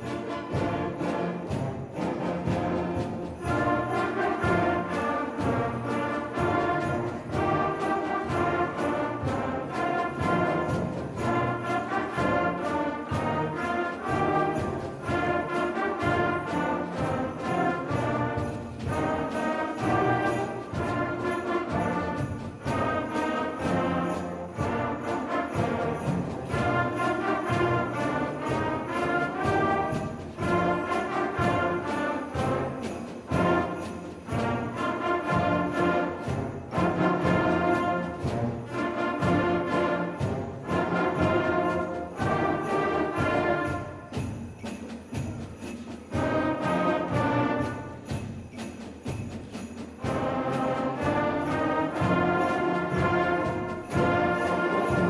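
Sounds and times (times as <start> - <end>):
concert band playing rumba: 0.0 - 55.0.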